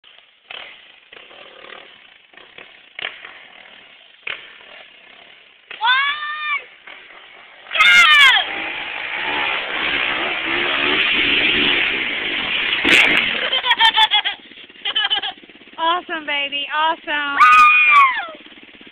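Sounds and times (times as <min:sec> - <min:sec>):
dirt bike engine rasp: 0:00.2 - 0:16.2, 0:17.1 - 0:18.9
people whooping: 0:17.4 - 0:18.4.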